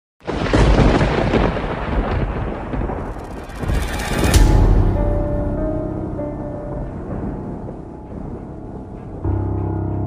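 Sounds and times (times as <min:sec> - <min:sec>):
thunder rumble: 0:00.2 - 0:10.0.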